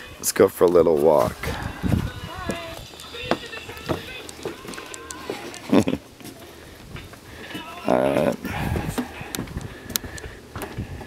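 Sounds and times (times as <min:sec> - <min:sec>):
person speaking: 0:07.4 - 0:09.2.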